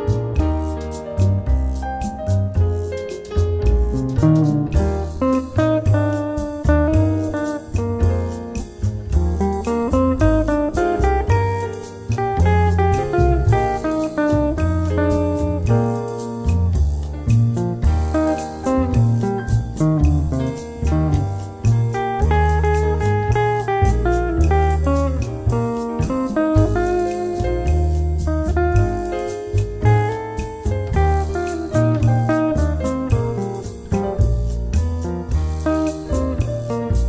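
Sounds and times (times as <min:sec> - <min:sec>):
electric guitar melody: 0:00.0 - 0:37.0
piano chords and bass notes: 0:00.0 - 0:37.0.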